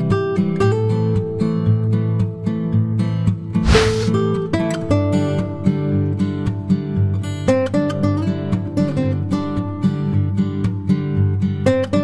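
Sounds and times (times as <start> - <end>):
short hiss: 3.6 - 4.2
strummed acoustic guitar music: 4.9 - 12.0.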